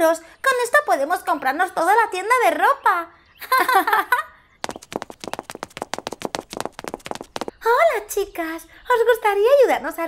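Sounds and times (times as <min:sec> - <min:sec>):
girl laughing: 0:03.4 - 0:04.3
rapid sharp clicks: 0:04.6 - 0:07.5.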